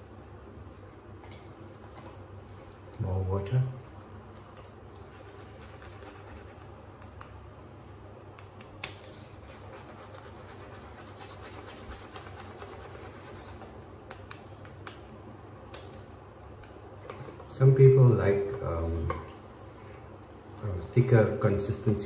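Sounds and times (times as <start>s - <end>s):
shaving brush swishing on stubble: 9.1s - 13.7s.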